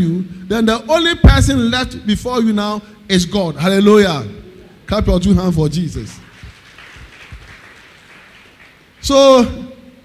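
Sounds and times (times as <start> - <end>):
congregation clapping: 5.9 - 9.5.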